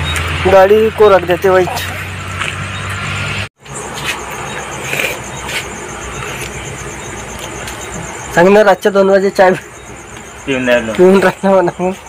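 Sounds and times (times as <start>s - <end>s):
crickets trilling: 0.0s - 12.0s
vehicle engine idling: 0.0s - 12.0s.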